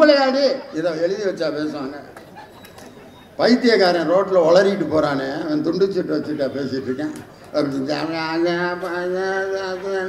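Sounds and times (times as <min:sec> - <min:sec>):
man speaking: 0:00.0 - 0:02.1, 0:03.4 - 0:10.0.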